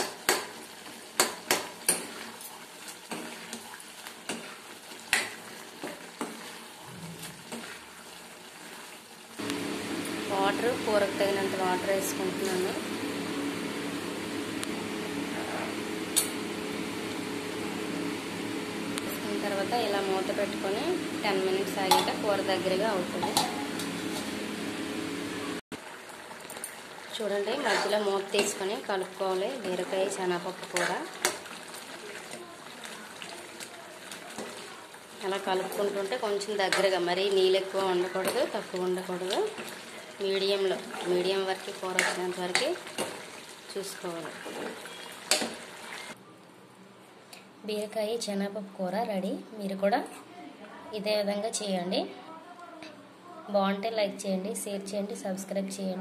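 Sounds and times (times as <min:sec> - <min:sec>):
kitchen background hum: 0:00.0 - 0:56.0
metal ladle stirring in pan: 0:00.2 - 0:09.0, 0:27.5 - 0:43.7
woman speaking: 0:10.2 - 0:13.0, 0:19.0 - 0:23.8, 0:27.2 - 0:31.1, 0:34.3 - 0:39.6, 0:40.2 - 0:42.8, 0:43.7 - 0:44.4, 0:47.6 - 0:56.0.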